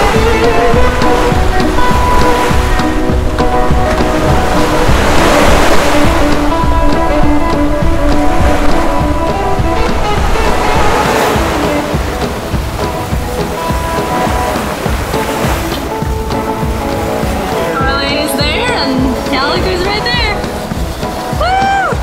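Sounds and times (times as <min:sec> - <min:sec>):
background music sustained notes: 0:00.0 - 0:22.0
water rushing: 0:00.0 - 0:22.0
wind buffeting microphone: 0:00.0 - 0:22.0.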